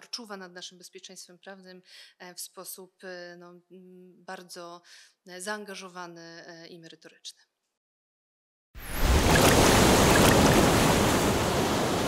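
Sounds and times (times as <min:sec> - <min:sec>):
sea waves breaking: 0:08.8 - 0:12.0.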